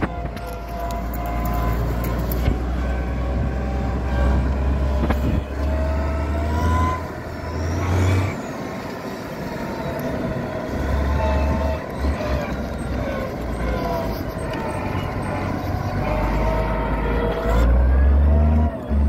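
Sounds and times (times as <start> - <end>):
deep rumble: 0.0 - 8.6
tractor diesel engine: 0.0 - 19.0.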